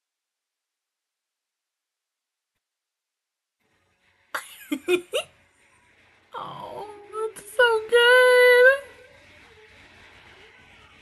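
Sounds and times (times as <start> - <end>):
person laughing and exclaiming: 4.4 - 5.3.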